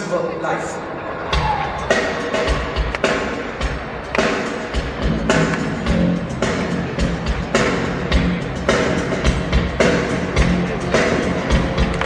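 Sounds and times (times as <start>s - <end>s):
keyboards: 0.0s - 12.0s
drum beat: 1.3s - 12.0s
live rock band playing: 1.8s - 12.0s.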